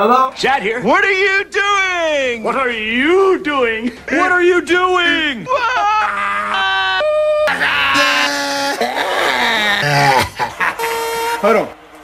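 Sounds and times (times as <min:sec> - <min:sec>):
person laughing: 0:05.5 - 0:11.4.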